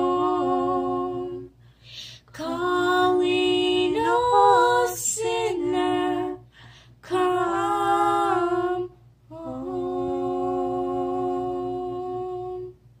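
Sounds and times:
woman singing a slow hymn: 0:00.0 - 0:01.6, 0:02.2 - 0:12.8.

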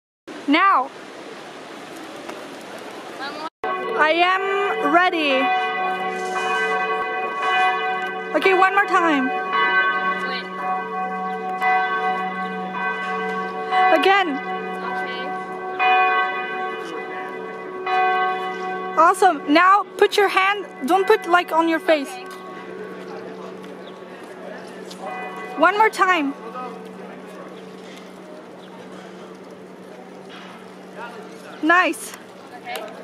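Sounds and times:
city square background hiss: 0:00.3 - 0:33.0
church bell ringing: 0:03.6 - 0:32.3.

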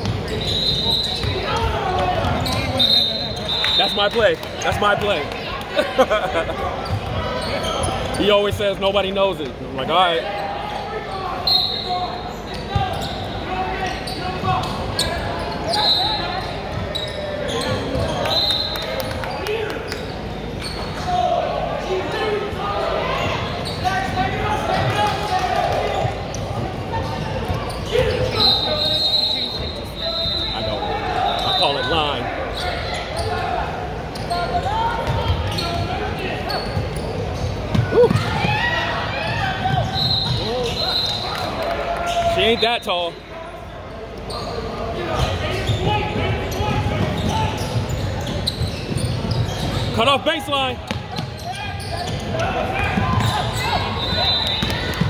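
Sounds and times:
crowd chatter and shouts: 0:00.0 - 0:55.0
sneakers squeaking: 0:00.0 - 0:55.0.

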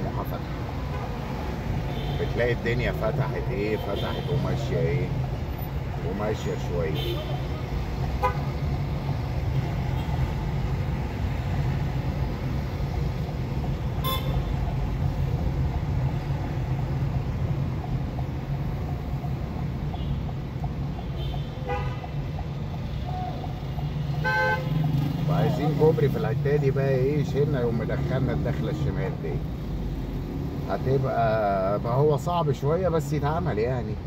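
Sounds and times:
car horn toots: 0:08.2 - 0:08.5, 0:14.0 - 0:14.5, 0:21.2 - 0:22.1, 0:24.2 - 0:24.8.

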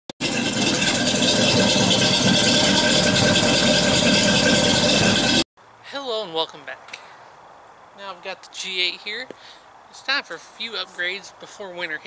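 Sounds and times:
car engine running: 0:00.2 - 0:05.5.

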